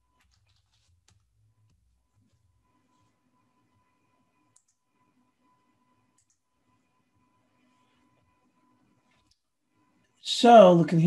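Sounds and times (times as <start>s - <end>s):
faint steady hum: 0.0s - 11.0s
keyboard and mouse clicks: 4.5s - 4.8s, 6.1s - 6.4s.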